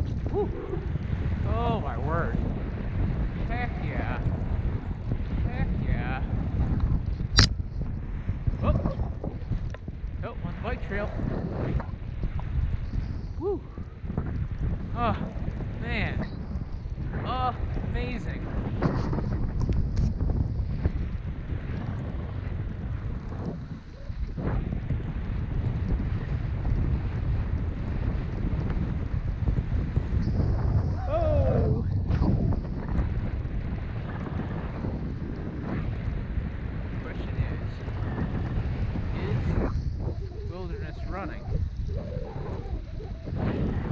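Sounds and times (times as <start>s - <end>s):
wind rushing over microphone: 0.0s - 43.9s.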